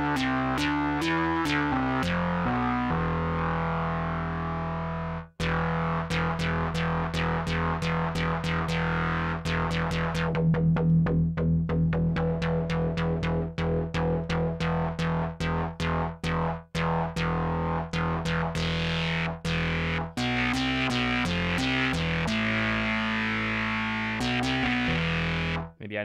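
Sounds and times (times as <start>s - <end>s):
distorted synthesizer notes: 0.0s - 25.7s.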